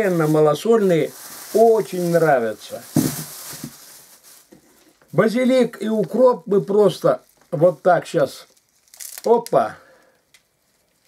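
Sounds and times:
plastic bag rustling: 0.0 - 9.7.

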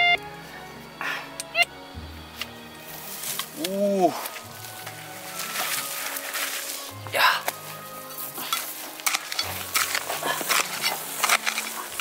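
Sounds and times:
soft background music: 0.0 - 12.0
hand hoe chopping stony soil: 8.2 - 12.0.

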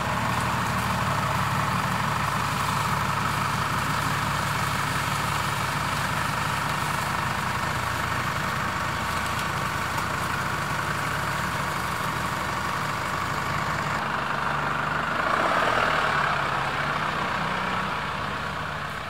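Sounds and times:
engine idling: 0.0 - 19.0.

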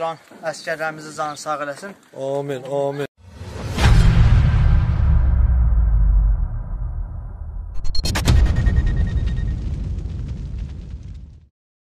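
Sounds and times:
deep low rumble: 3.3 - 11.4.

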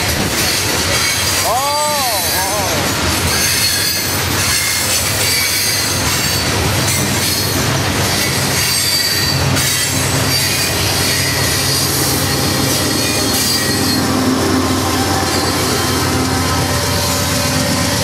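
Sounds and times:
clacking over rail joints: 0.0 - 18.0
diesel locomotive engine drone: 0.0 - 18.0
freight train cars rolling past: 0.0 - 18.0
squealing train wheels: 0.0 - 18.0.

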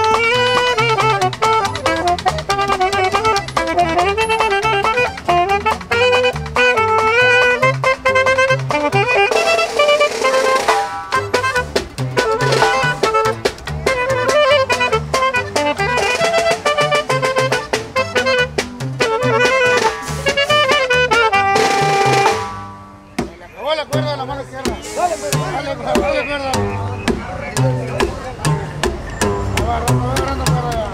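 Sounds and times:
accordion: 0.0 - 30.9
bajo sexto guitar: 0.0 - 30.9
band playing live: 0.0 - 30.9
slapped upright bass: 0.0 - 30.9.

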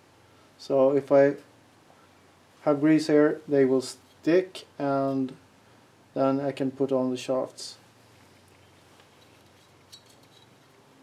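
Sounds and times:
light metallic clinks: 8.3 - 10.8.

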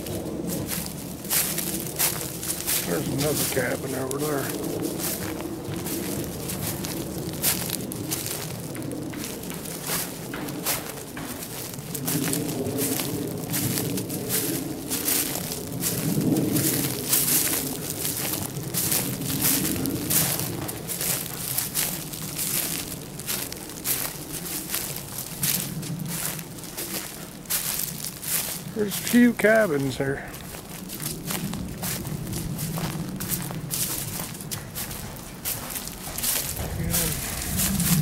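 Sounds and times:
low rumble: 0.0 - 28.8, 30.3 - 38.0
footsteps on dry pine needles: 0.0 - 38.0.

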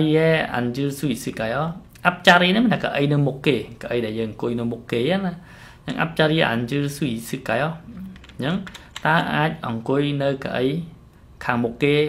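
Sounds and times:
man lecturing: 0.0 - 12.0
keyboard clicks: 8.0 - 9.1.

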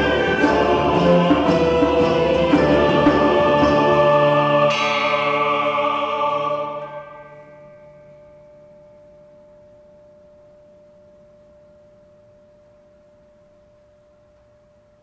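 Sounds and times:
struck metal bell-like tone ringing: 0.0 - 15.0.

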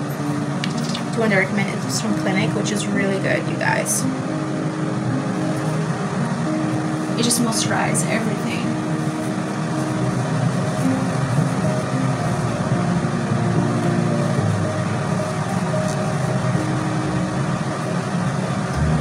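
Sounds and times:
held low tones: 0.0 - 19.0
mechanical hum: 0.0 - 19.0.

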